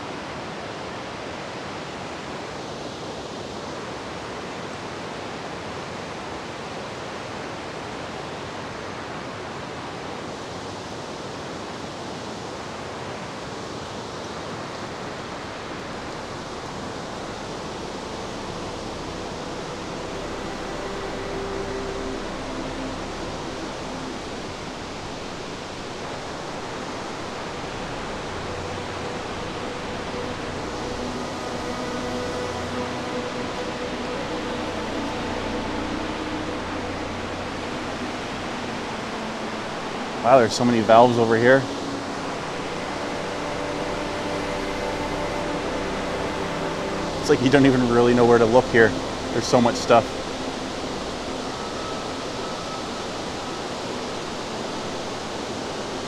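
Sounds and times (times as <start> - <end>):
water rushing in creek and falls: 0.0 - 56.0.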